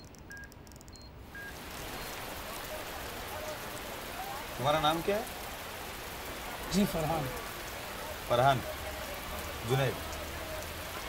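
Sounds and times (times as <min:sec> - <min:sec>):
short faint beep: 0:00.0 - 0:02.2.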